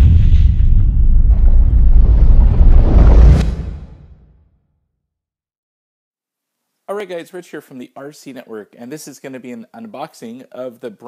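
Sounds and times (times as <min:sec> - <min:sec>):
deep cinematic boom rumble: 0:00.0 - 0:04.4.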